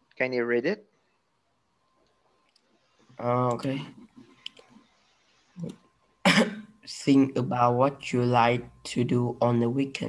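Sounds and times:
person coughing: 6.2s - 6.7s.

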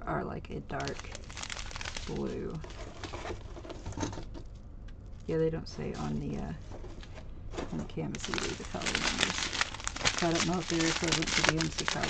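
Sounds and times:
plastic bag crinkling: 0.7s - 3.8s, 8.0s - 12.0s
plastic beads pattering in bags: 0.8s - 3.3s, 8.1s - 12.0s.

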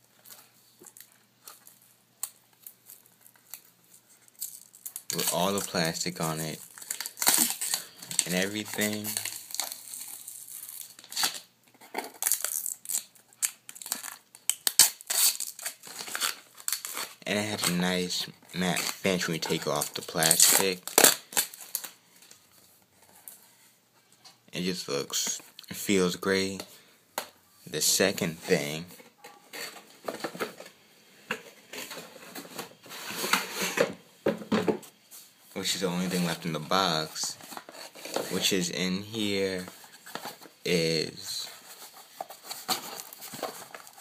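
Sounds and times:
plastic film crinkling and tearing: 4.3s - 18.0s, 18.6s - 22.4s, 41.6s - 44.0s.

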